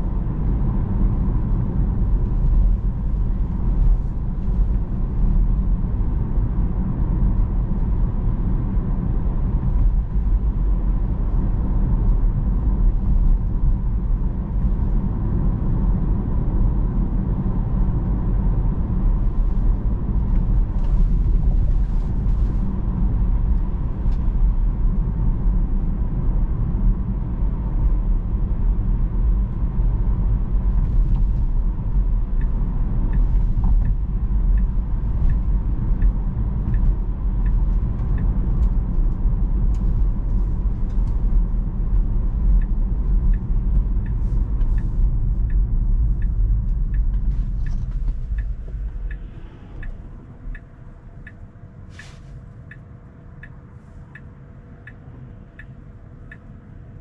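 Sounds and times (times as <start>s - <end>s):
turn signal ticking: 8.7s - 57.0s.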